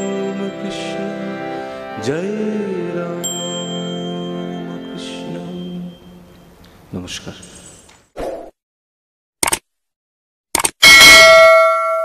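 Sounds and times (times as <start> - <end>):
bright bell ding: 3.2 - 4.4, 10.8 - 12.0.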